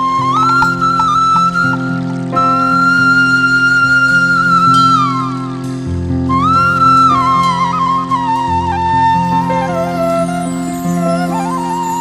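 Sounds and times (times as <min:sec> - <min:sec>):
bamboo flute melody: 0:00.0 - 0:12.0.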